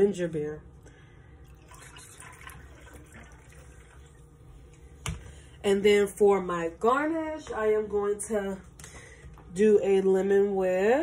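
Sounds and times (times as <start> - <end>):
liquid pouring into glass: 1.4 - 4.4.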